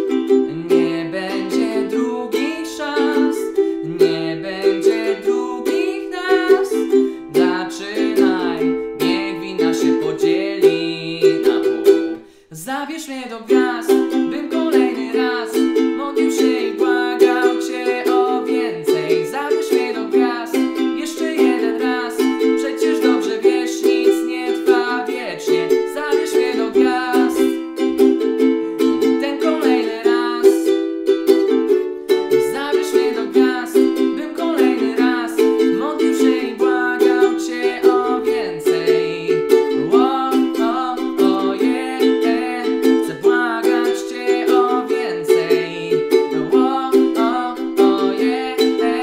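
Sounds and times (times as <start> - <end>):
ukulele strumming: 0.0 - 12.4, 13.1 - 49.0
man singing: 0.0 - 49.0.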